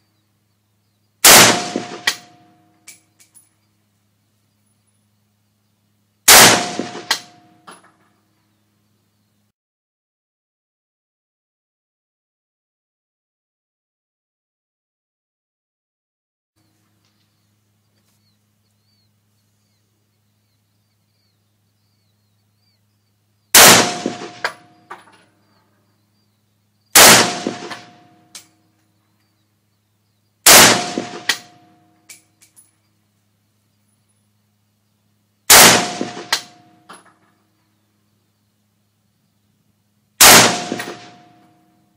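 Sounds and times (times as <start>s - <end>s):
rifle shot with echo: 1.2s - 2.5s, 6.3s - 7.6s, 23.5s - 24.8s, 26.9s - 28.2s, 30.4s - 31.7s, 35.5s - 36.7s, 40.2s - 41.5s.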